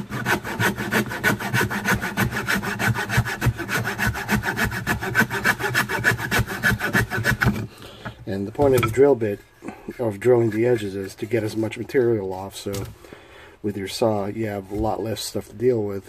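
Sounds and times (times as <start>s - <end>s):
saw cutting wood: 0.0s - 7.7s.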